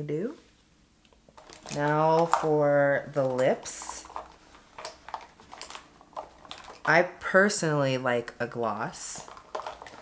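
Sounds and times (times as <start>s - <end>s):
plastic items clicking and tapping: 1.1s - 7.7s, 8.7s - 10.0s.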